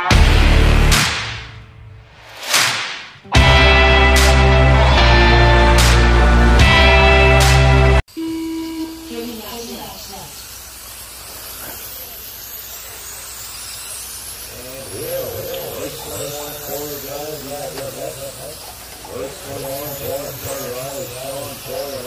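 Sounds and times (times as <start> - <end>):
rc car motors whining: 8.1 - 22.0
voices talking: 8.2 - 10.6, 14.3 - 22.0.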